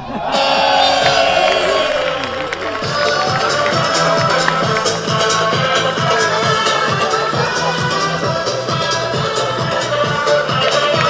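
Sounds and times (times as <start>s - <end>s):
falling sweep: 0.0s - 4.4s
electronic dance music: 0.2s - 11.0s.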